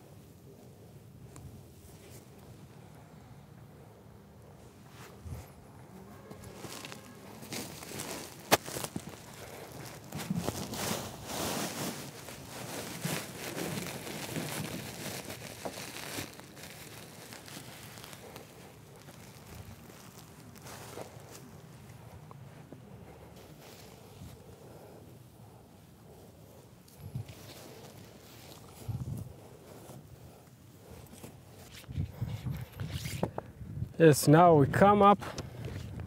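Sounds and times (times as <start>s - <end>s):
rustling and crinkling handling: 4.5s - 33.4s.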